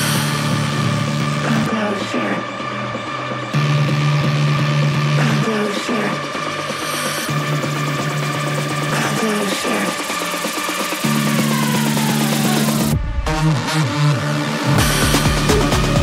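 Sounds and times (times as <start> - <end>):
bass notes: 0.0 - 16.0
rising synth sweep: 6.2 - 16.0.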